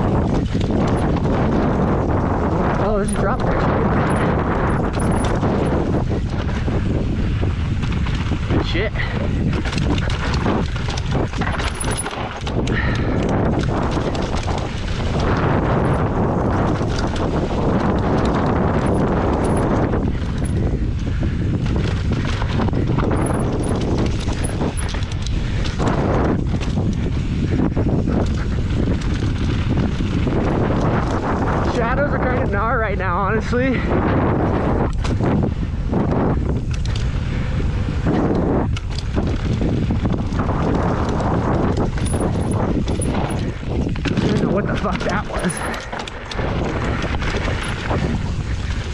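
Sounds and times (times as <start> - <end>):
bike rattling and knocking: 0.0 - 48.9
bike tyres rolling on dirt: 0.0 - 48.9
wind noise on microphone: 0.0 - 48.9.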